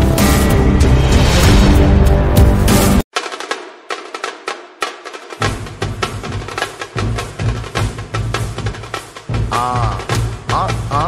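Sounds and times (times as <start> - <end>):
deep bass: 0.0 - 3.0
dance music drum hits: 0.0 - 11.0.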